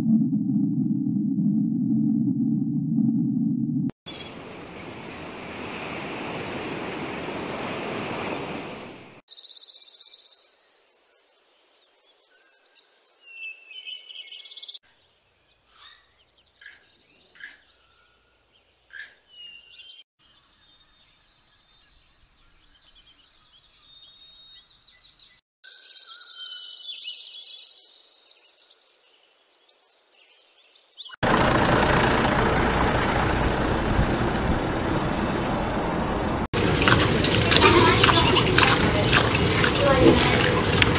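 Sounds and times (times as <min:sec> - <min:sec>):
small birds chirping: 0:11.9 - 0:31.2, 0:36.7 - 0:40.9.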